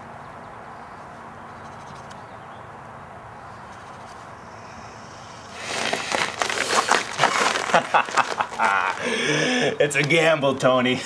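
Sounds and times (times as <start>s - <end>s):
outdoor background hiss: 0.0s - 11.0s
man laughing loudly: 6.7s - 9.8s.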